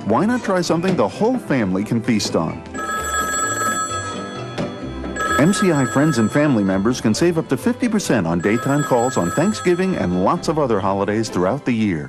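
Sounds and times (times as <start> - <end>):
background music: 0.0 - 12.0
telephone ringing: 2.8 - 10.9.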